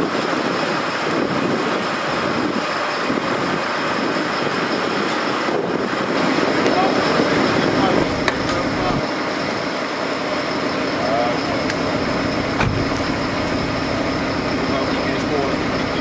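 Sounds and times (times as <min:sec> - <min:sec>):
fire engine running: 0:00.0 - 0:16.0
indistinct voices: 0:06.2 - 0:16.0.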